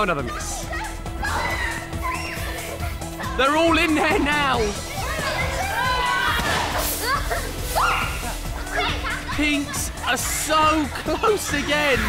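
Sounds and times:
background music with steady beat: 0.0 - 12.0
excited voices shouting: 0.2 - 12.0.

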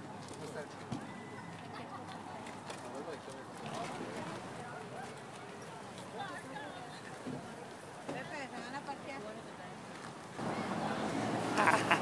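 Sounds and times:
outdoor crowd talking: 0.0 - 12.0.

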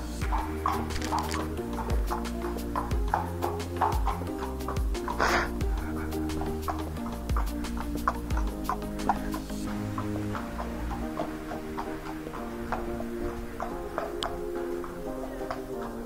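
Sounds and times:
held chords: 0.0 - 16.0
ticking beat: 0.0 - 16.0.

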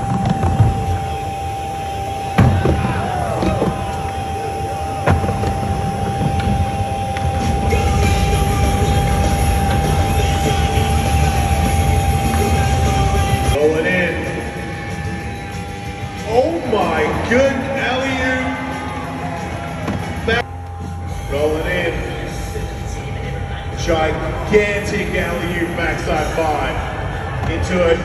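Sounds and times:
skateboard wheels on wooden ramp: 0.0 - 1.4, 2.1 - 13.6.

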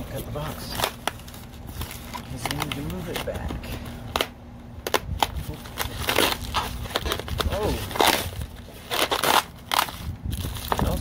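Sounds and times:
styrofoam scraping and tearing: 0.0 - 11.0
knife cutting packing tape: 0.1 - 11.0.

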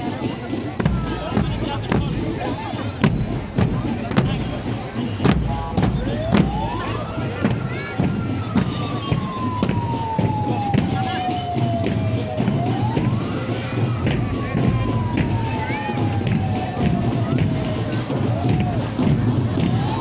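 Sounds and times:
crowd chatter: 0.0 - 20.0
marching bass drums beating: 0.0 - 20.0
siren-like tone: 5.6 - 20.0.

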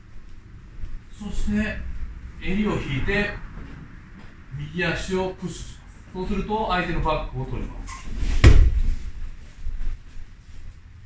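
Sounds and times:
body thumping onto foam mats: 8.3 - 10.0.

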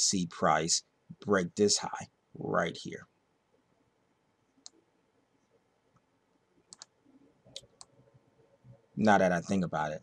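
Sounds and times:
computer mouse clicks: 4.6 - 4.8, 6.0 - 8.0.

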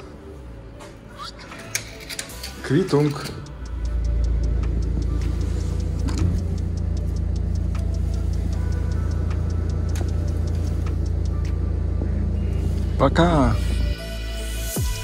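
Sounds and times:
music with fast ticking beat: 2.4 - 15.0
car engine idling: 2.8 - 14.0.

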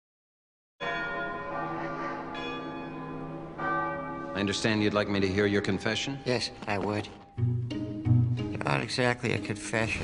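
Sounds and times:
church bell tolling: 0.8 - 7.6.

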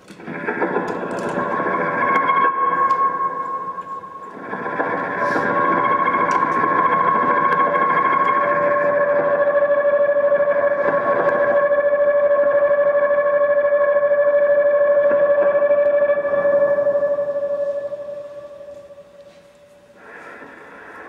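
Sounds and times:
bowed electric guitar drone: 0.1 - 19.4.

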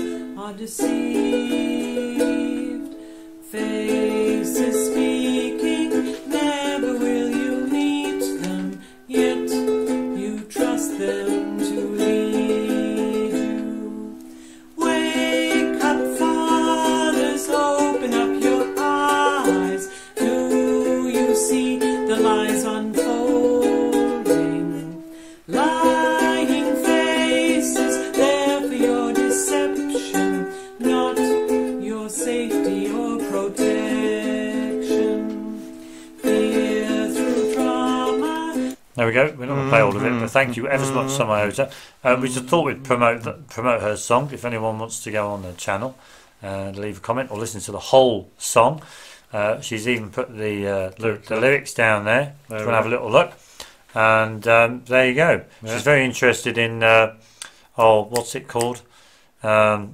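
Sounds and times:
woman singing: 0.0 - 14.2, 14.8 - 35.6, 36.2 - 38.8, 39.5 - 41.5
ukulele strumming: 0.0 - 44.2.

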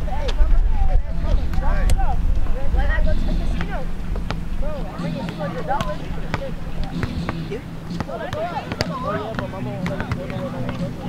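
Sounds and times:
children chattering: 0.0 - 11.0
basketball bouncing on concrete: 3.6 - 4.4, 5.2 - 10.9.

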